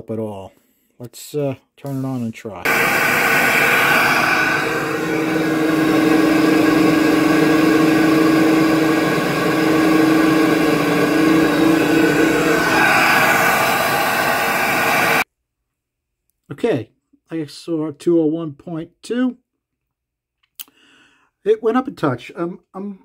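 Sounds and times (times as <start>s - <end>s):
blower motor humming: 2.7s - 15.2s
flow bench air rushing: 2.7s - 15.2s.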